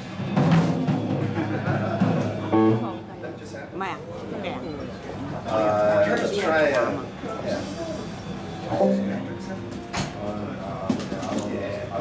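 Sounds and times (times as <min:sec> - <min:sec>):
murmur of voices: 0:00.0 - 0:12.0
low instrument note: 0:08.7 - 0:09.9.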